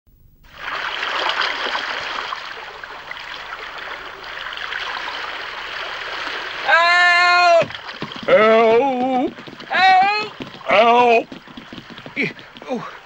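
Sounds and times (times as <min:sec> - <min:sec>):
water lapping and washing: 0:00.5 - 0:13.0.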